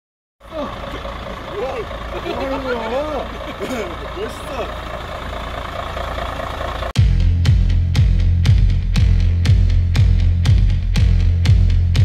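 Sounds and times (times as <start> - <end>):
people talking: 0.4 - 4.8
truck engine idling: 0.4 - 12.0.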